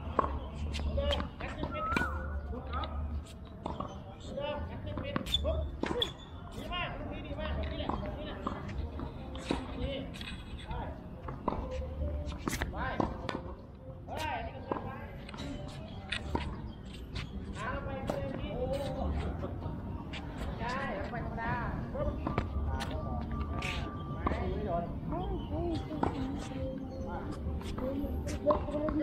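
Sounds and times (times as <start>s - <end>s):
voices talking: 0.0s - 29.0s
tennis ball bouncing: 0.1s - 2.2s, 3.6s - 4.0s, 16.2s - 17.3s, 22.0s - 24.4s, 26.0s - 26.5s.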